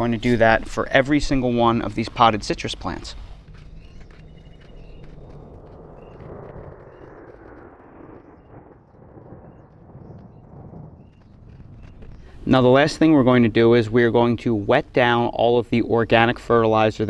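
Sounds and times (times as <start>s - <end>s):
rushing noise with low rumble: 0.0s - 14.2s.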